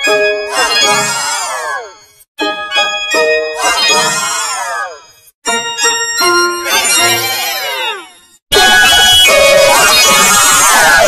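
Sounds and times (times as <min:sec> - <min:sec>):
pitch-shifted layered cartoon music: 0:00.0 - 0:11.0.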